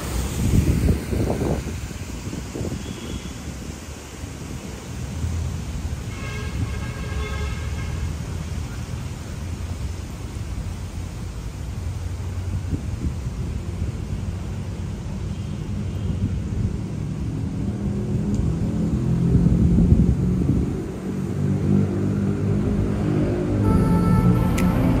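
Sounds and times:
city traffic rumble: 0.0 - 25.0
background music: 23.6 - 25.0.

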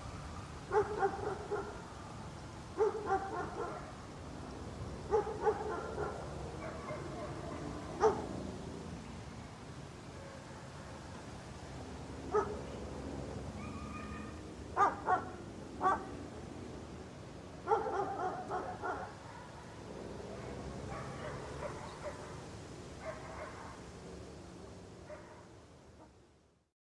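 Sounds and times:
outdoor background noise: 0.0 - 26.7
dog barking: 0.7 - 1.8, 2.8 - 4.0, 5.1 - 8.3, 10.2 - 11.0, 12.3 - 12.6, 13.6 - 16.1, 17.6 - 22.4, 23.0 - 23.8, 25.0 - 26.2.

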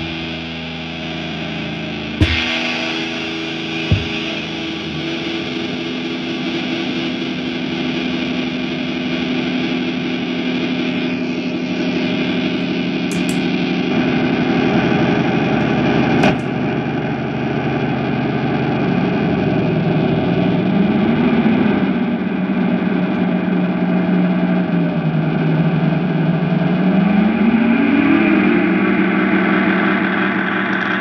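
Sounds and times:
electric guitar feedback howl: 0.0 - 31.0
sharp click: 13.1 - 13.6.

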